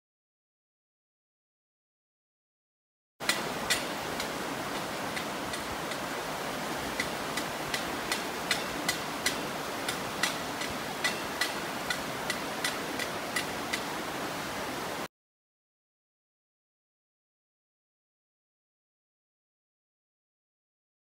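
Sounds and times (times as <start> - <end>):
water roaring over weir: 3.2 - 15.1.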